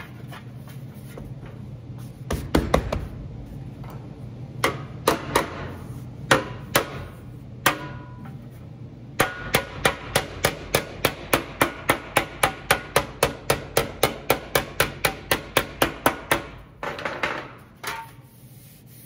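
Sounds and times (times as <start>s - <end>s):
hammer tapping sheet metal: 4.6s - 8.4s, 9.2s - 18.2s
rubbing sound: 18.0s - 19.0s.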